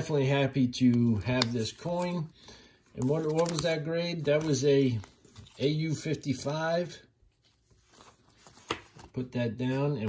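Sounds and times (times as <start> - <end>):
plastic coin holder handling: 2.9 - 5.6.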